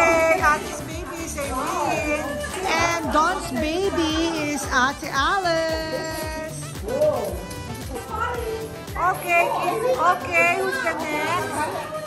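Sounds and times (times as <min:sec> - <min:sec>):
women talking excitedly: 0:00.0 - 0:06.8, 0:07.9 - 0:12.0
background music: 0:00.0 - 0:12.0.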